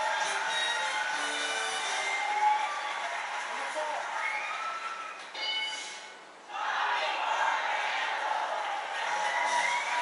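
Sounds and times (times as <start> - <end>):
game show music: 0.0 - 4.0.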